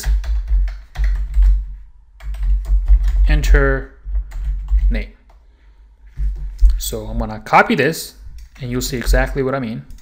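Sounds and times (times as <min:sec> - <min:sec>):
computer keyboard typing: 0:00.0 - 0:01.6, 0:02.2 - 0:05.0.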